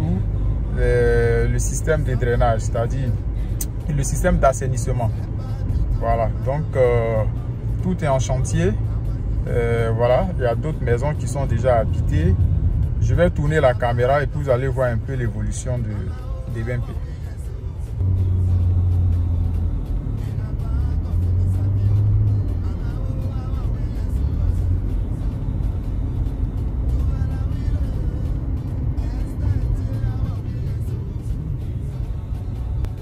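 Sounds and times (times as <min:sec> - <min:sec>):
car interior road rumble: 0:00.0 - 0:33.0
music playing: 0:00.0 - 0:33.0.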